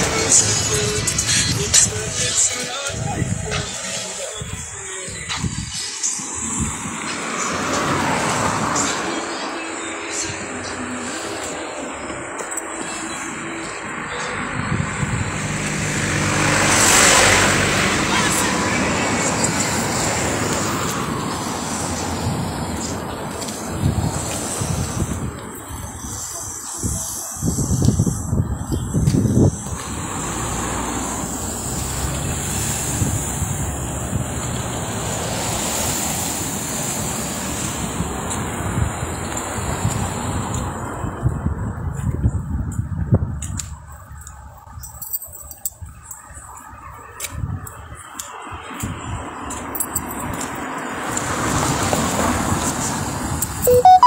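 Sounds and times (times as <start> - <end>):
indistinct voices: 0.0 - 33.4
street traffic: 0.0 - 54.0
vehicle passing: 5.5 - 27.1, 29.0 - 41.9.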